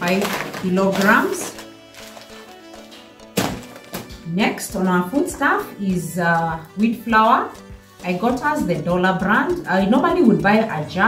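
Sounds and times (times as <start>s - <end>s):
soft background music: 0.0s - 11.0s
bag of flour thudding on table: 3.3s - 4.2s.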